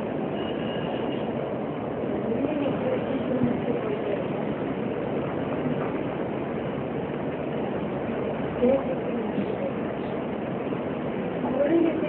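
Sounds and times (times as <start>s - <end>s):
noisy rumble: 0.0s - 12.0s.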